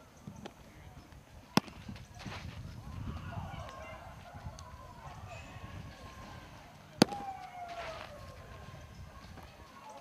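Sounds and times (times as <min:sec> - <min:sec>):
baseball smacking into leather mitt: 0:01.5 - 0:02.5, 0:07.0 - 0:08.1.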